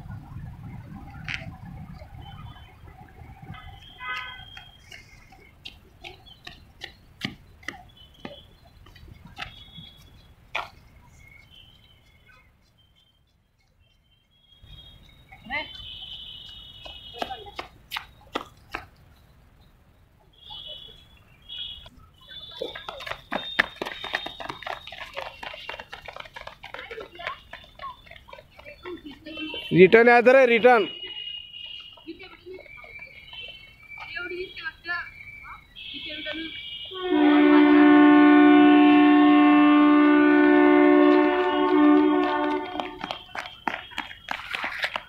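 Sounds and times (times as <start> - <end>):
running footsteps on concrete: 3.0 - 19.3, 21.8 - 37.0, 39.9 - 45.0
two-pitch horn blast: 36.8 - 43.2.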